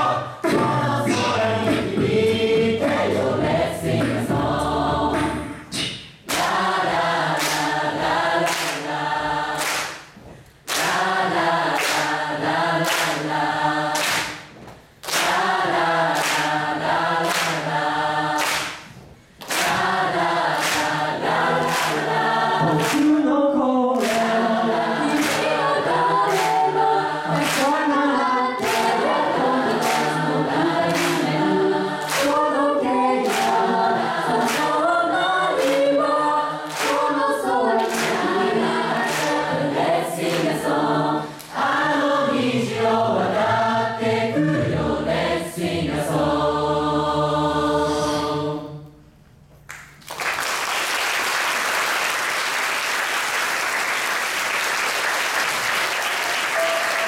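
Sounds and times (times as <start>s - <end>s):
choir singing in harmony: 0.0s - 10.0s, 10.7s - 49.1s, 56.0s - 57.0s.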